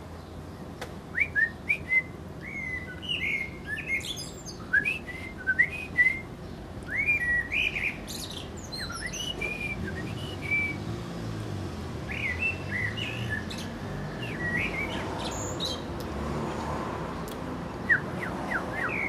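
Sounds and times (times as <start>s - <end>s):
blackbird singing: 0.2s - 11.0s, 12.0s - 16.0s, 17.8s - 19.0s
person whistling: 4.7s - 6.2s.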